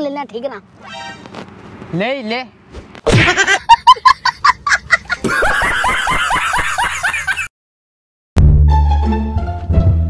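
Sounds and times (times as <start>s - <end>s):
brief pitched tone: 0.8s - 1.2s.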